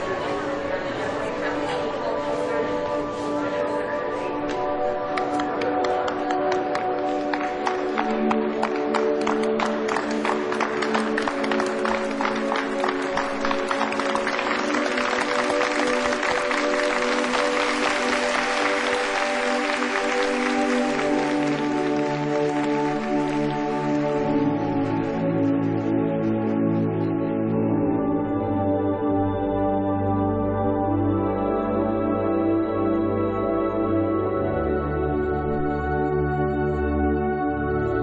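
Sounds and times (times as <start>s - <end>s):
crowd applause: 4.5s - 25.2s.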